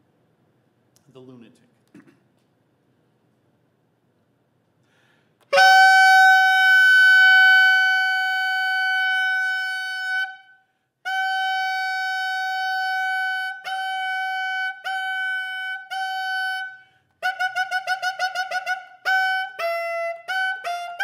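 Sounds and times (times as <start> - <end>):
bass clarinet playing: 5.5 - 21.0.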